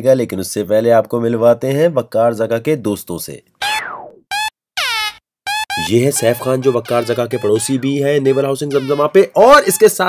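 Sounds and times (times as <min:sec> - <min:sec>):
comic horn honks: 0:04.3 - 0:10.0.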